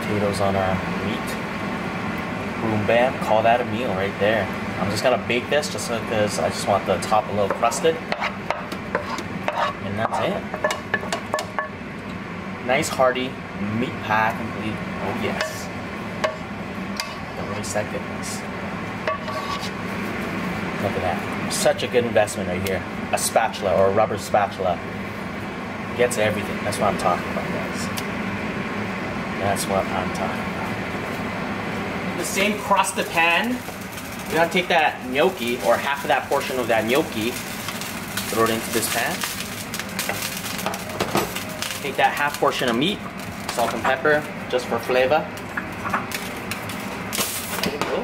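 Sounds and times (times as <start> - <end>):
steady low hum: 0.0 - 48.0
utensil stirring in a pan: 6.3 - 11.5, 19.0 - 20.2, 32.2 - 44.0
spatula scraping a pot: 8.1 - 10.4, 19.1 - 19.8
gnocchi sizzling in a frying pan: 30.9 - 48.0.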